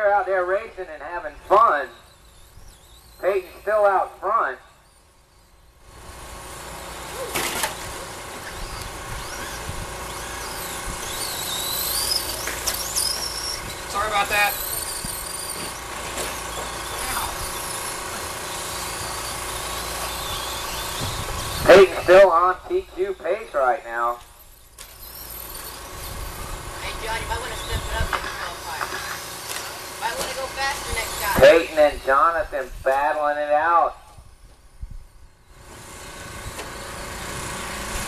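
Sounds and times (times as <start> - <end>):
electric toy truck motors whining: 0.0 - 38.0.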